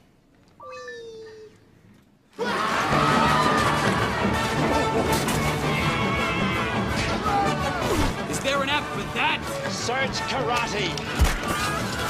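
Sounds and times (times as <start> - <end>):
loud music: 2.6 - 10.5.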